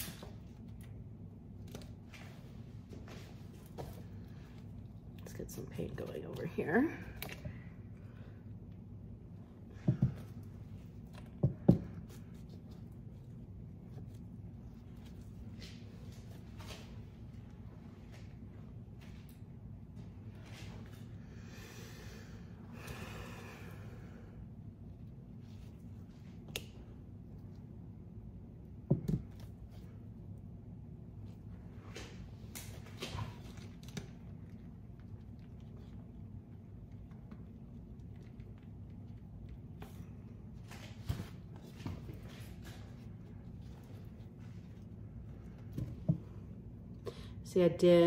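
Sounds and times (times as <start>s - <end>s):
low room hum: 0.0s - 48.0s.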